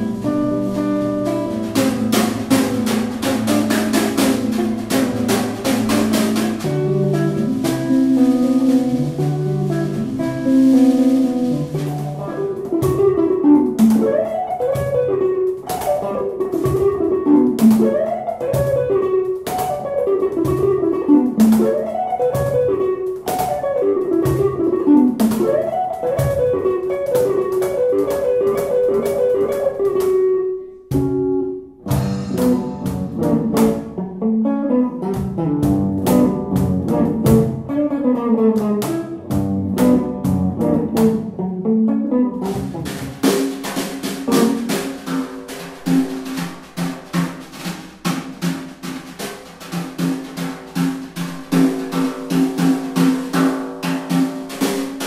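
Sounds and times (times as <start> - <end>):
percussion taps: 0.0 - 34.0, 34.9 - 55.0
electric guitar melody: 0.0 - 55.0.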